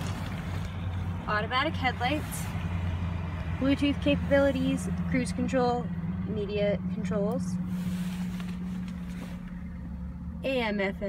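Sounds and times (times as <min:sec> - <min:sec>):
car engine idling low hum: 0:00.0 - 0:11.0.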